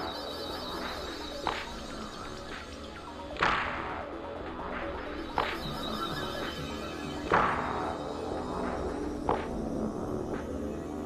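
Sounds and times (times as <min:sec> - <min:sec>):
techno music with synth tones: 0:00.0 - 0:11.0.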